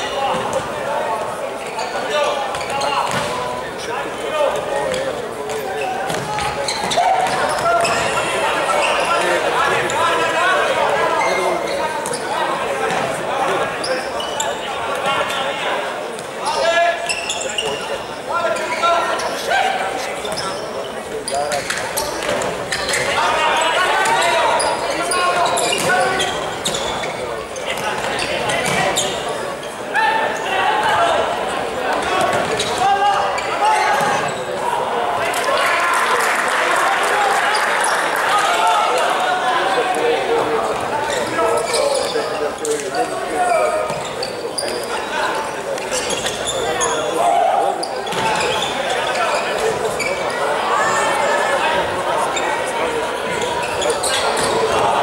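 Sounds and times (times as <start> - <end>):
players shouting in echoing hall: 0.0 - 55.0.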